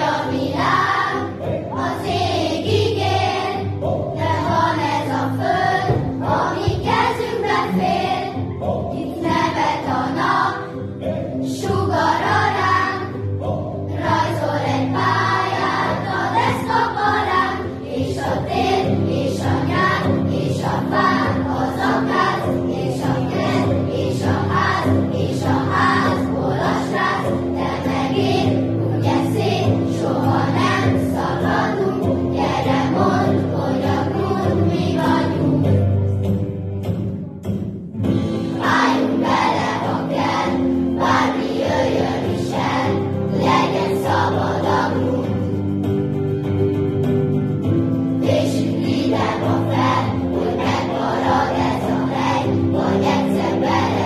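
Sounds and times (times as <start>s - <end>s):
children's choir singing: 0.0s - 46.8s, 47.6s - 54.0s
instrumental accompaniment with steady beat: 0.0s - 54.0s.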